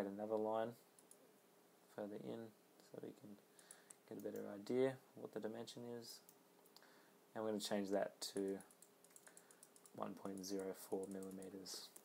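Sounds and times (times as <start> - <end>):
computer keyboard keystrokes: 8.4 - 12.0.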